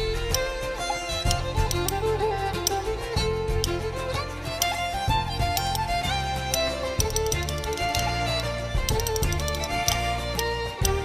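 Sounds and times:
bass: 0:00.0 - 0:11.0
fiddle melody: 0:00.0 - 0:11.0
percussive beat: 0:00.0 - 0:11.0.

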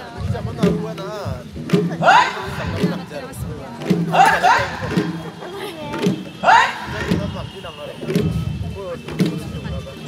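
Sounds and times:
low drum beats: 0:00.0 - 0:10.0
people talking: 0:00.0 - 0:10.0.

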